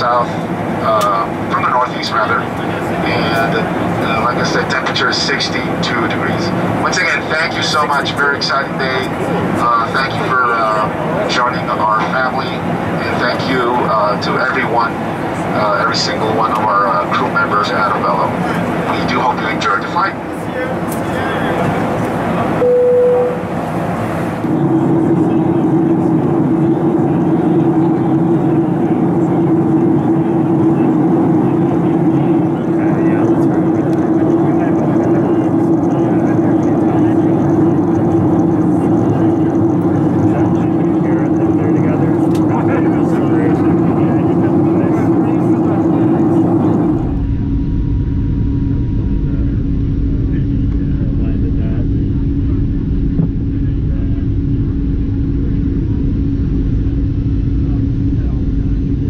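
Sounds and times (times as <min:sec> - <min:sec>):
airplane cabin engine hum: 0:00.0 - 0:59.0.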